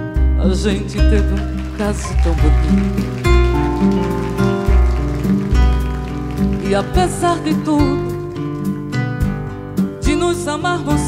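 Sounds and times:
acoustic band music: 0:00.0 - 0:11.0.

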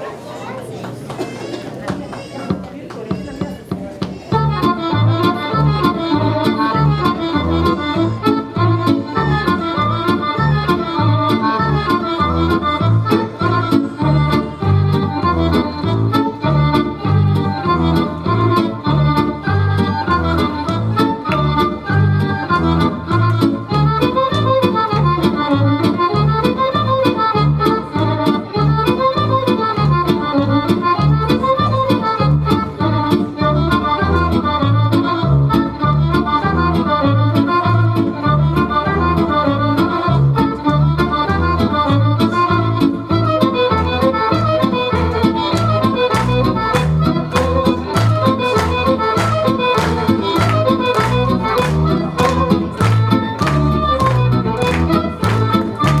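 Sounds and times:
accordion folk dance music: 0:02.0 - 0:56.0.

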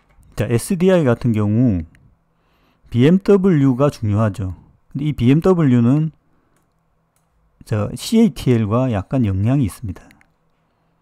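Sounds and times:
man speaking: 0:00.3 - 0:02.0, 0:02.9 - 0:06.2, 0:07.6 - 0:10.2.

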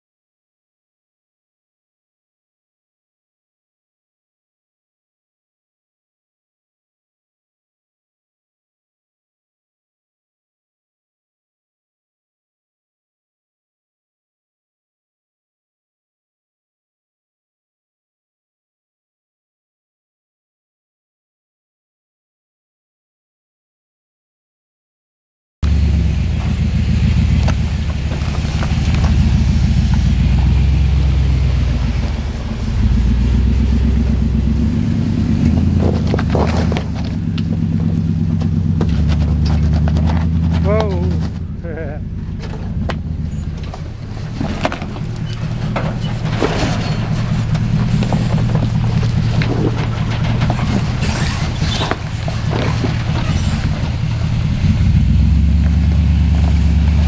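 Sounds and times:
truck engine at crawling speed: 0:25.6 - 0:57.0
knocks and scrapes of rock: 0:27.4 - 0:30.6, 0:35.4 - 0:41.5, 0:42.3 - 0:57.0.

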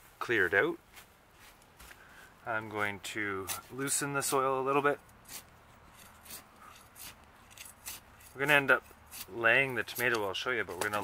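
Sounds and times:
trowel scraping soil: 0:02.7 - 0:11.0.

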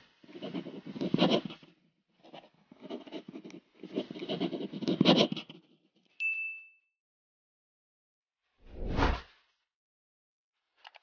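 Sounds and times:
whoosh sound effect: 0:08.7 - 0:09.2.

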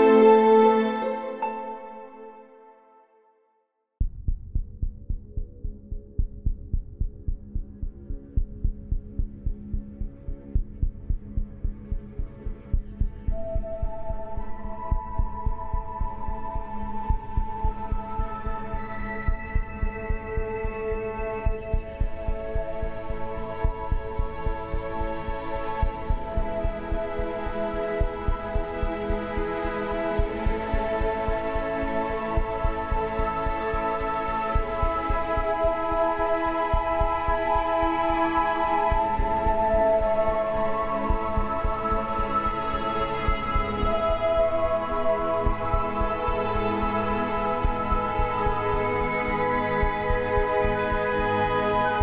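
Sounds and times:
ambient meditation music: 0:00.0 - 0:03.4, 0:04.6 - 0:52.0
low throbbing pulse: 0:04.0 - 0:38.2, 0:38.8 - 0:51.3.

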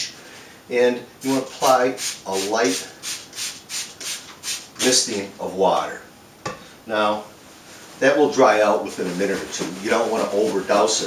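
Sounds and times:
spray bottle hissing sprays: 0:01.6 - 0:05.1.

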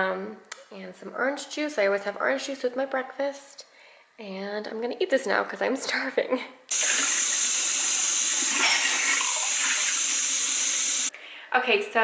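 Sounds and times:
dishes being rinsed: 0:06.7 - 0:11.1
faucet running into sink: 0:06.7 - 0:11.1.

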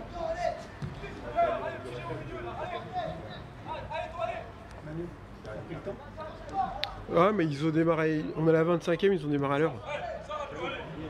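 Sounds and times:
men talking and calling out: 0:00.0 - 0:11.0.

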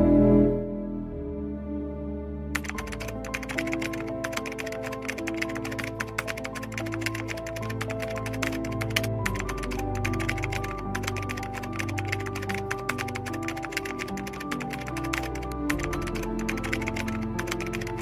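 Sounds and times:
background music with held notes: 0:00.0 - 0:18.0
keyboard typing clicks: 0:02.6 - 0:18.0.

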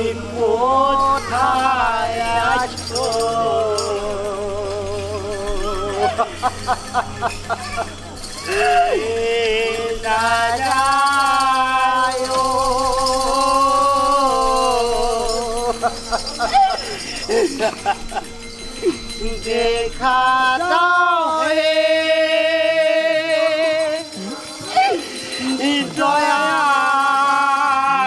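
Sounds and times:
man singing a long note: 0:00.0 - 0:06.4, 0:08.4 - 0:17.7, 0:18.9 - 0:24.2, 0:24.9 - 0:28.0
person exclaiming theatrically: 0:07.5 - 0:09.0.

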